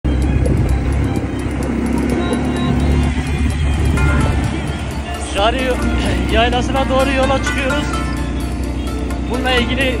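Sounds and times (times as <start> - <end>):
vehicle engine running: 0.0 - 10.0
background music: 0.1 - 10.0.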